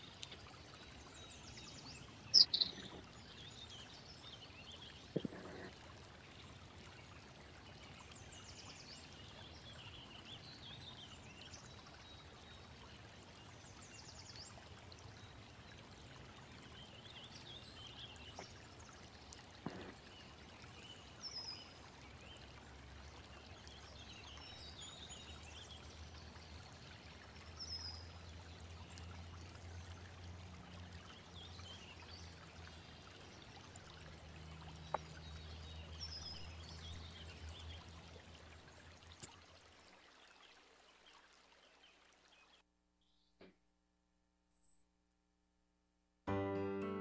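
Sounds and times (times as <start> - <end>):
faint water: 0.0 - 43.6
bird chirps: 2.3 - 3.0.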